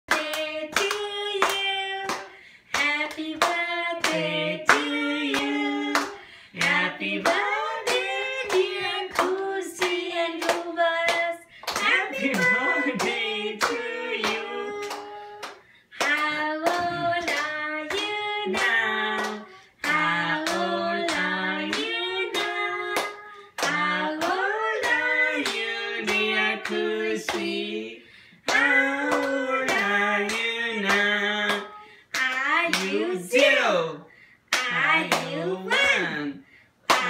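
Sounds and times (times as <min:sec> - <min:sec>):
rhythmic hand claps: 0:00.1 - 0:33.7, 0:34.5 - 0:36.2
voices singing: 0:02.8 - 0:33.8.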